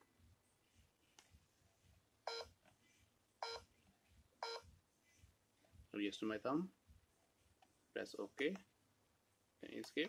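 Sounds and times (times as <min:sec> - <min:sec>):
fingerprint terminal short beeps: 0:02.3 - 0:02.5, 0:03.4 - 0:03.6, 0:04.4 - 0:04.6.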